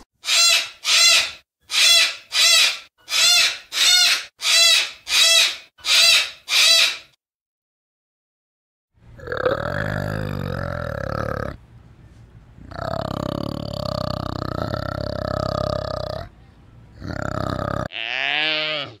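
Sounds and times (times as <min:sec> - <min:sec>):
cockatoo calling: 0:00.2 - 0:07.1
low rumbling animal call: 0:09.1 - 0:11.6, 0:12.6 - 0:19.0.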